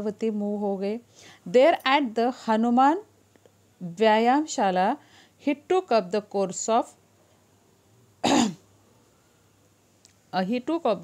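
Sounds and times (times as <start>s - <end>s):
woman clearing throat: 8.2s - 8.6s.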